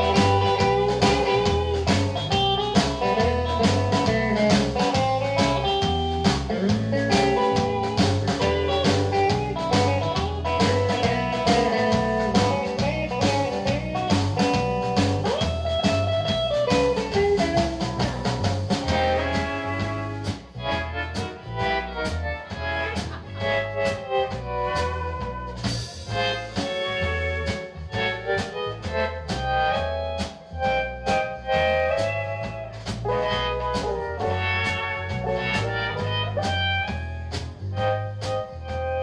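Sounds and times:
electric guitar lead: 0.0s - 39.0s
rockabilly band playing: 0.0s - 39.0s.

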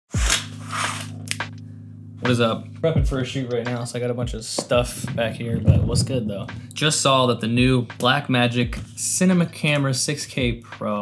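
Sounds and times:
deep hit with falling pitch: 3.0s - 7.7s.

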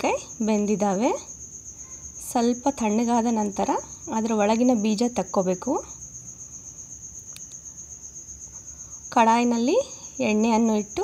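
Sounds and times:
insect trilling: 0.0s - 11.0s.

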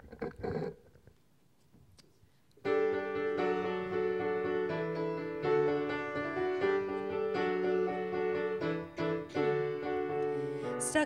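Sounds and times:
piano playing sustained chords: 2.6s - 11.0s.

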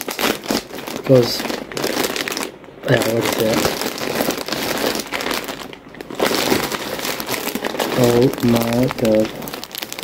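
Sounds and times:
plastic packaging crinkling: 0.0s - 10.0s.

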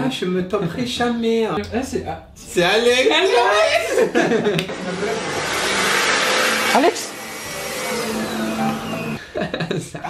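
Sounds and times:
electric hand dryer blowing: 4.7s - 9.2s.

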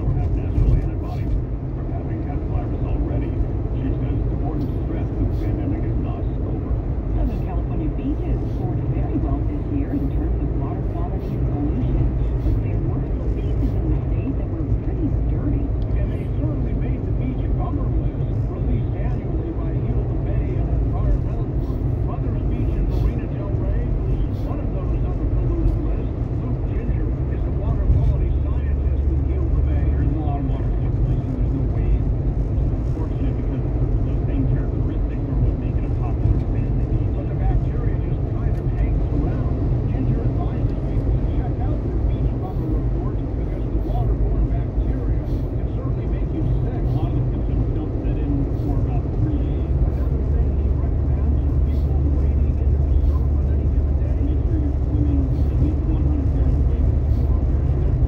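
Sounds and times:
indistinct talk from radio: 0.0s - 58.0s
road and engine rumble: 0.0s - 58.0s.

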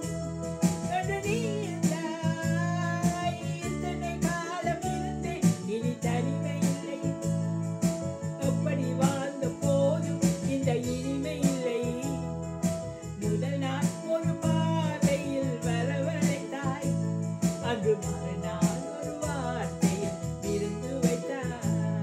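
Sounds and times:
electronic keyboard with beat: 0.0s - 22.0s
woman singing: 0.8s - 7.3s, 8.4s - 12.4s, 13.2s - 22.0s.

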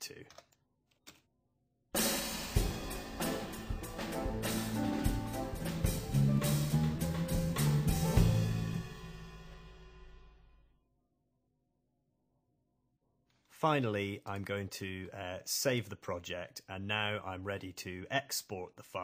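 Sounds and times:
drum kit with snare and cymbals: 2.0s - 10.5s
bass notes: 2.6s - 9.9s.

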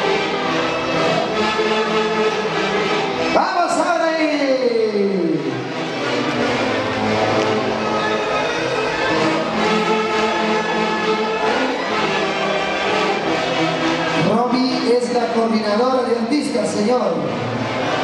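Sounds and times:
melody instruments holding long notes: 0.0s - 18.0s
orchestra playing dance music: 0.0s - 18.0s.

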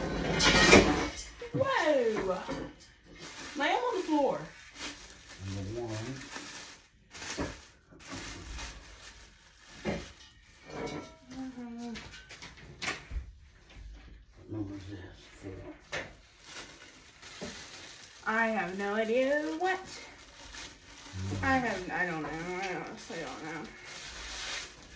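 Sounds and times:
plastic wrapping crinkling: 0.2s - 12.8s, 14.0s - 24.9s.

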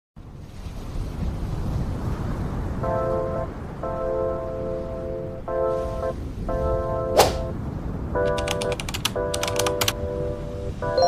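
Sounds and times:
soft background music chords: 2.8s - 11.0s
keyboard key clicks: 8.2s - 10.0s.

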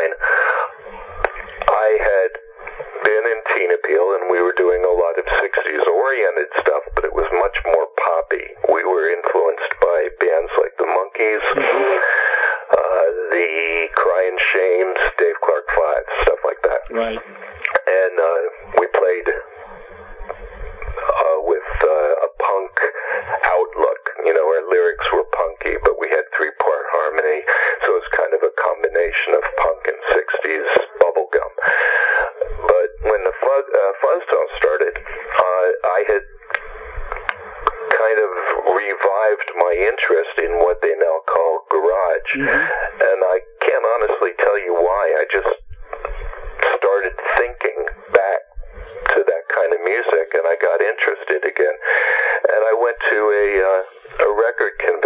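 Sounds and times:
man talking over telephone: 0.0s - 19.5s, 20.9s - 36.6s, 37.8s - 45.7s, 46.6s - 55.0s.

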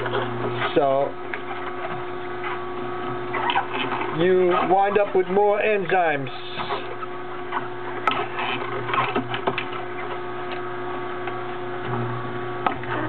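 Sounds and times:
juicer motor hum: 0.0s - 13.0s.

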